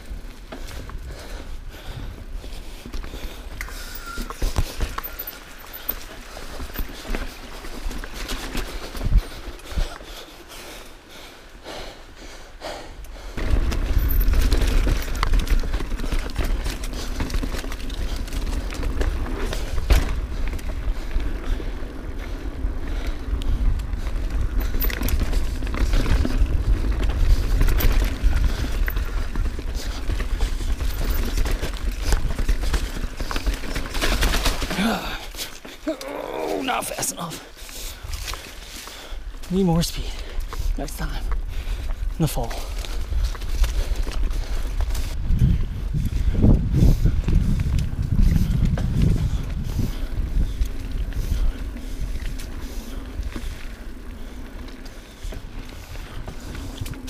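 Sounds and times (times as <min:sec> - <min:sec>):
bike rattling over rocks: 0:02.9 - 0:10.0, 0:13.4 - 0:35.9
wind rumble on microphone: 0:13.1 - 0:33.9, 0:40.4 - 0:57.0
tyre and chassis clatter: 0:13.4 - 0:21.1, 0:23.6 - 0:35.9.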